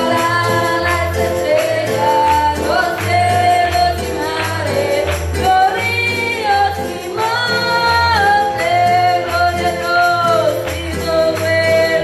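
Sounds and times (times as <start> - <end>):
keyboard and guitar accompaniment: 0.0 - 12.0
woman singing into microphone: 0.0 - 12.0.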